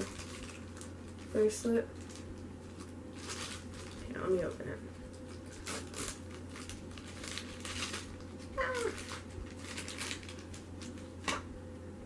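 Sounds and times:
plastic bag crinkling: 0.0 - 11.5.

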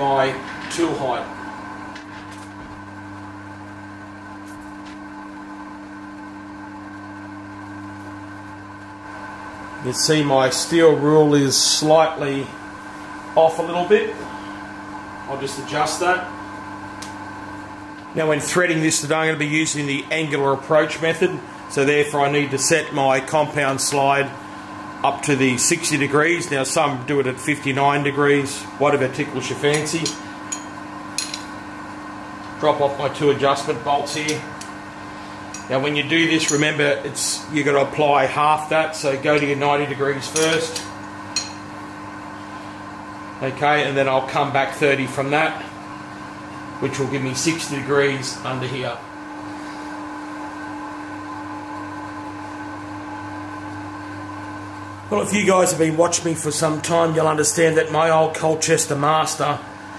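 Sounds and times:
low electrical hum: 0.0 - 59.9.

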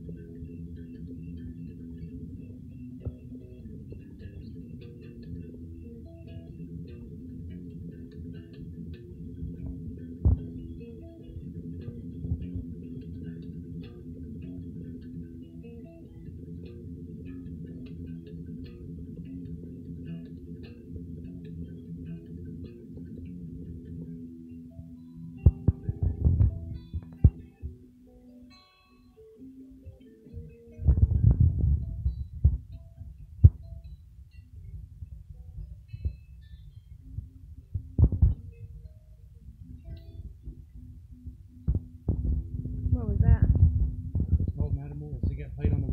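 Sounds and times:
low throbbing music: 0.0 - 27.9, 34.6 - 45.9
electric guitar through amplifier: 0.0 - 45.9.

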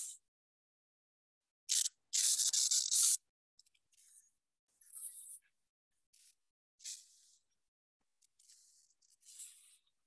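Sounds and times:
stylus scratching on tablet: 1.7 - 3.2, 6.2 - 7.6, 8.2 - 10.0.

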